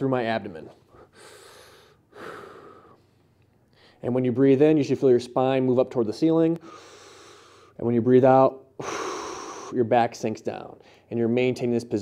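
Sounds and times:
faint intake of breath: 0.8s - 4.0s, 6.6s - 7.8s, 8.8s - 9.8s
man breathing slowly: 0.9s - 4.0s, 6.6s - 7.8s, 8.8s - 9.8s.

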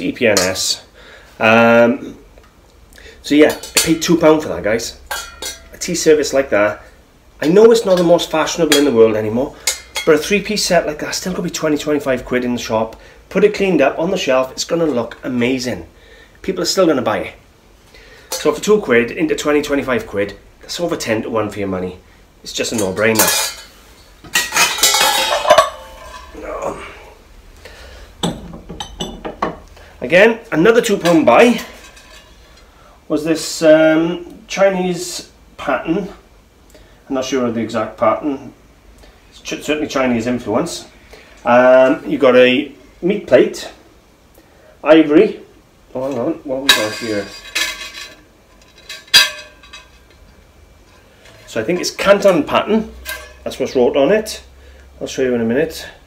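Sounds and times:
metal tea set clinking: 5.1s - 5.8s, 24.4s - 26.4s, 46.7s - 50.2s
sharp metal clank: 5.1s - 5.8s, 24.3s - 26.3s, 46.6s - 50.1s.

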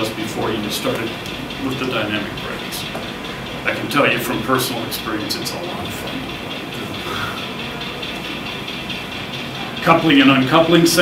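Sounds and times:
model locomotive diesel engine sound: 0.0s - 11.0s.

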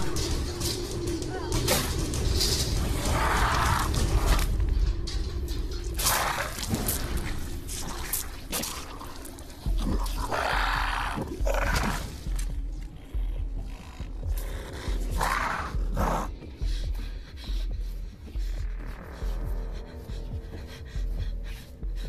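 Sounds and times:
dark film score: 0.0s - 22.0s
creature growling: 6.0s - 13.4s.

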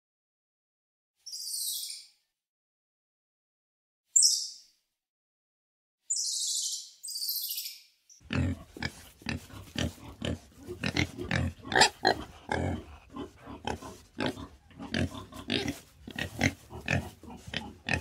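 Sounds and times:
wild boar grunting: 8.2s - 18.0s.

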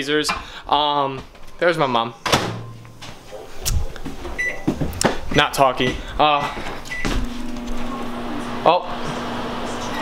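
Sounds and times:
microwave keypad beeping: 4.4s - 4.7s.

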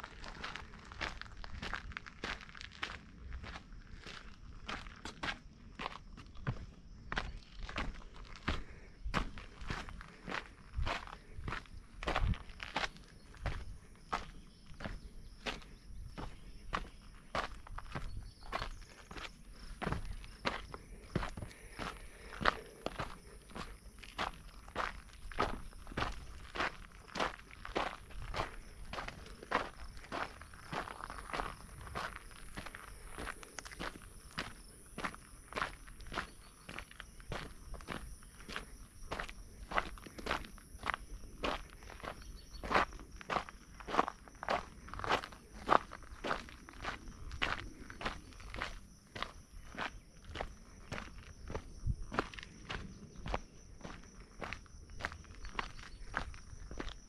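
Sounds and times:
footsteps on dirt trail: 0.0s - 57.0s.

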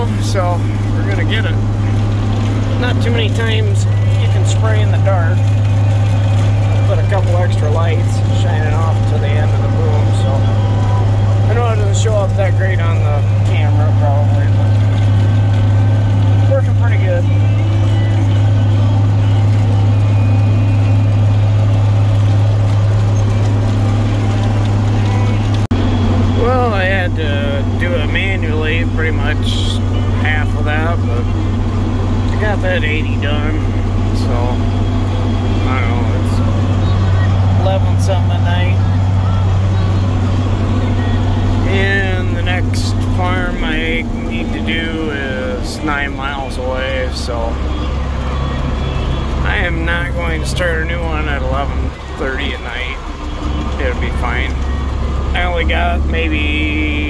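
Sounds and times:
tractor engine droning: 0.0s - 57.0s.

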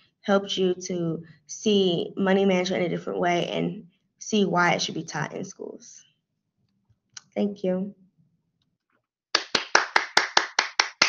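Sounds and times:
person clapping: 9.4s - 11.0s.

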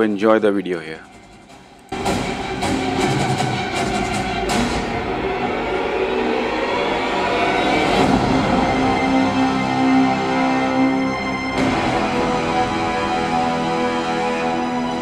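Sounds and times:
dramatic trailer score: 0.0s - 15.0s
hard percussive hits: 1.0s - 6.0s
low rumbling score: 1.0s - 15.0s.

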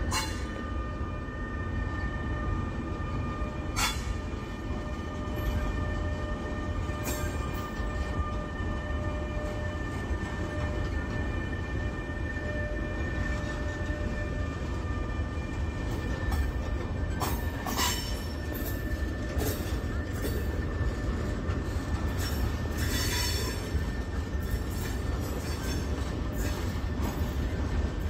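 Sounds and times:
train wheels rumbling on rail: 0.0s - 28.0s.

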